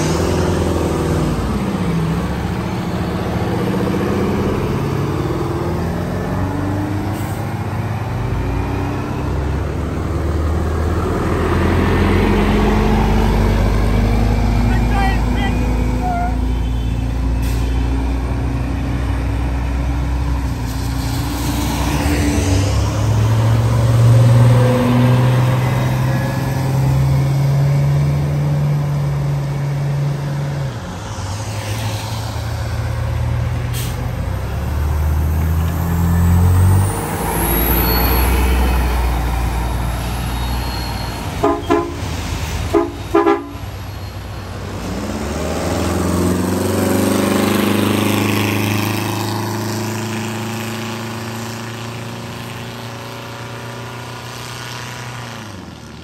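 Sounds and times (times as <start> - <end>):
diesel bus engines pulling away: 0.0 - 56.0
horn toots: 40.8 - 43.7.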